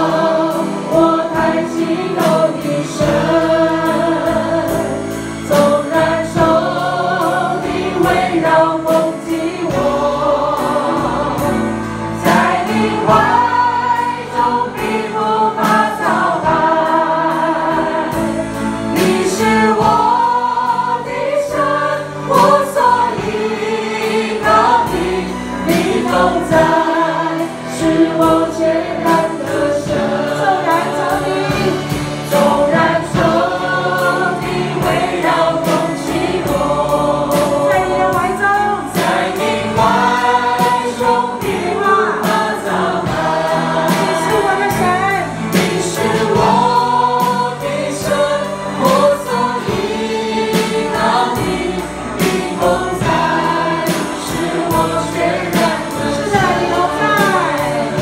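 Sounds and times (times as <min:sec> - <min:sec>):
congregation singing praise song: 0:00.0 - 0:58.0
drum hits: 0:00.0 - 0:58.0
live band playing: 0:00.0 - 0:58.0.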